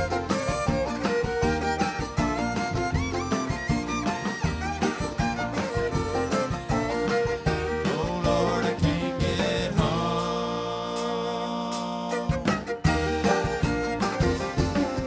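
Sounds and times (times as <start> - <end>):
bluegrass string band playing: 0.0 - 15.0
fiddle lead line: 0.0 - 15.0.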